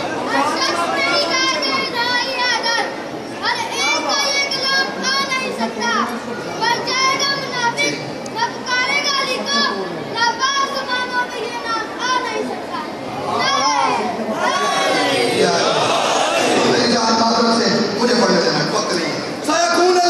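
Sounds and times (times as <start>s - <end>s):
raised high-pitched voices: 0.0s - 19.1s.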